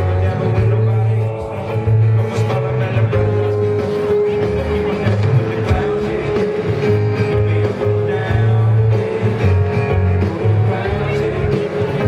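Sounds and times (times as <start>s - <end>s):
acoustic and electric guitars: 0.0s - 12.0s
deep bass notes: 0.0s - 12.0s
drums: 0.0s - 12.0s
piano: 0.0s - 12.0s.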